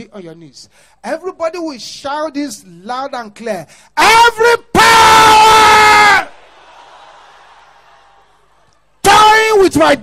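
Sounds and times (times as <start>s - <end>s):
person shouting into microphone: 4.0s - 6.3s, 9.0s - 10.0s.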